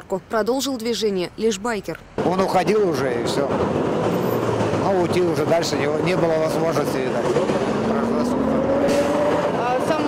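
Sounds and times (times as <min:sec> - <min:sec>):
street traffic: 0:00.0 - 0:10.0
vehicle engine accelerating: 0:02.6 - 0:10.0.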